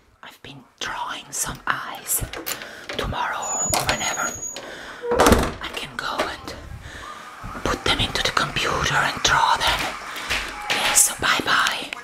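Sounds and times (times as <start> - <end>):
person whispering: 0.2 - 4.5, 5.6 - 6.9, 10.8 - 12.0.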